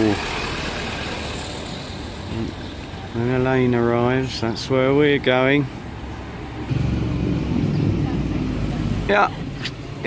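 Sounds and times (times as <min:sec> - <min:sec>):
car driving past: 0:06.2 - 0:09.8.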